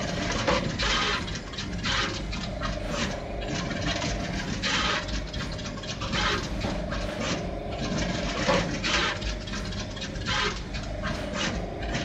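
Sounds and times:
machine whine and rumble: 0.0s - 12.0s.

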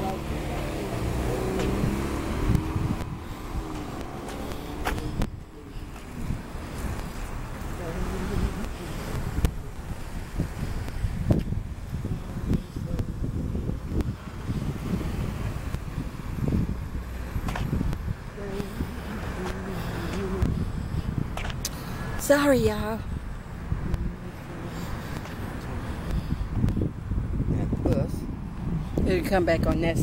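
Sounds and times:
bus going by: 0.0s - 30.0s
road traffic: 0.0s - 30.0s
wind buffeting microphone: 0.0s - 30.0s.

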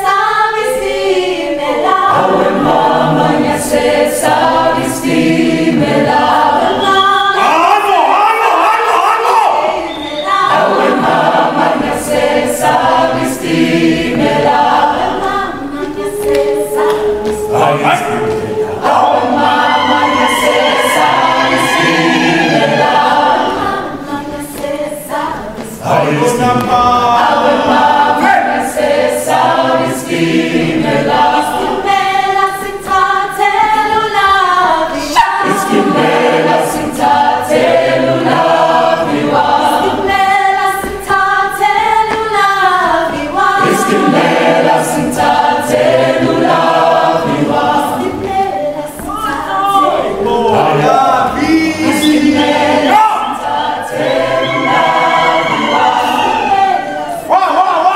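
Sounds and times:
mixed choir singing in harmony: 0.0s - 57.9s
regular percussive beat: 9.0s - 57.3s.

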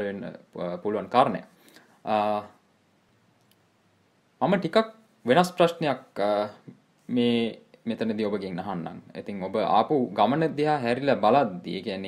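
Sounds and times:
man's voice: 0.0s - 2.6s
faint click: 3.4s - 3.7s.

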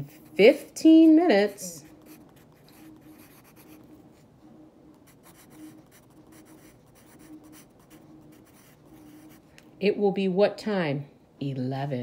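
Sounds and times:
pencil writing on paper: 1.8s - 3.9s, 5.0s - 9.4s.

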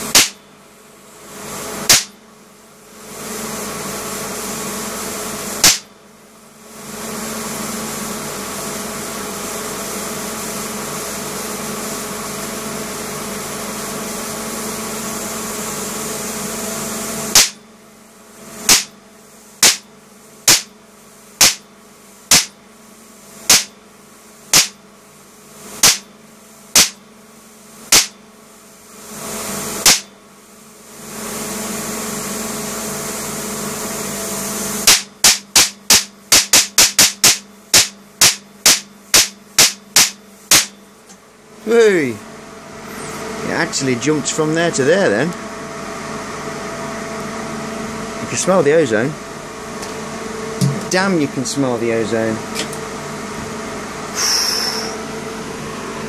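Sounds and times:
electrical buzz: 0.0s - 2.3s, 3.2s - 17.8s, 18.6s - 22.7s, 48.2s - 56.0s
loud sharp spark cracks: 0.1s - 0.4s, 1.8s - 2.2s, 5.6s - 5.9s, 17.3s - 17.6s, 18.7s - 19.0s, 19.6s - 20.8s, 21.4s - 21.7s, 22.3s - 22.6s, 23.5s - 23.8s, 24.5s - 24.8s, 25.8s - 26.1s, 26.7s - 27.0s, 27.9s - 28.2s, 29.8s - 30.2s, 34.8s - 40.8s.

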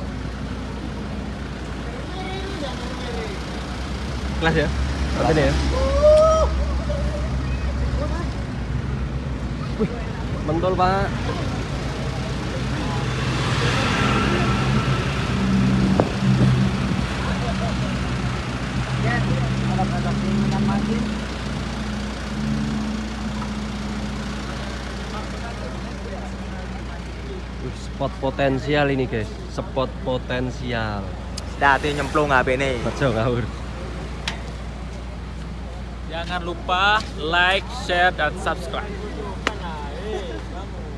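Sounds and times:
vehicle engine humming: 0.0s - 40.9s
scattered voices: 23.0s - 40.9s.

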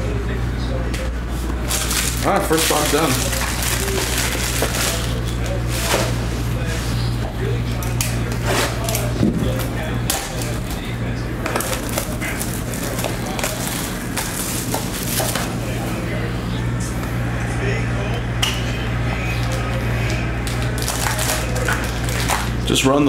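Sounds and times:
low background hum: 0.0s - 23.0s
plastic wrap crinkling and tearing: 1.6s - 6.3s, 11.5s - 15.8s, 19.4s - 22.7s.

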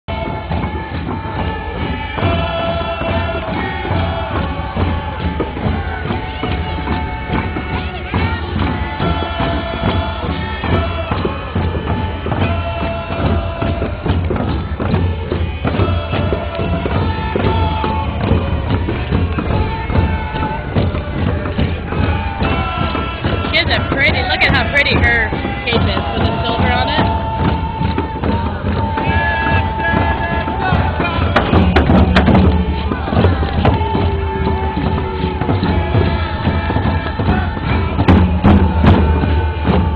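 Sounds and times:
group chanting: 0.1s - 39.9s
hand drums beaten steadily: 0.1s - 39.9s.

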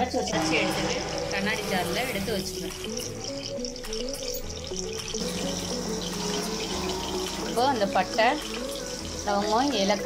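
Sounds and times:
hot oil sizzling in a pot: 0.0s - 10.0s.

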